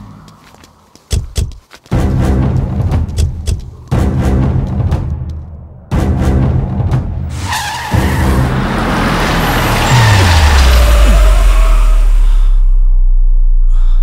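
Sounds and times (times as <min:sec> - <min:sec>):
dramatic film score: 0:01.9 - 0:14.0
car tyres screeching: 0:07.2 - 0:12.7
deep falling bass drone: 0:10.7 - 0:14.0.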